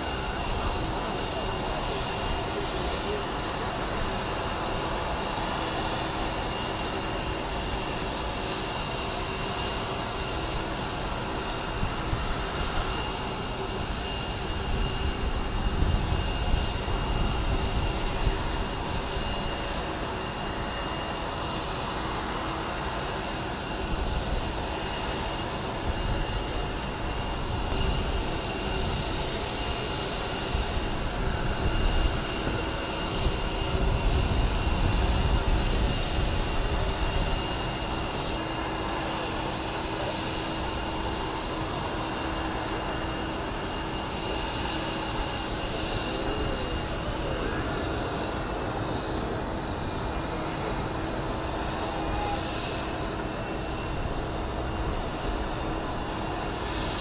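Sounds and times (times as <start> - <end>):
jet engine whine: 0.0 - 57.0.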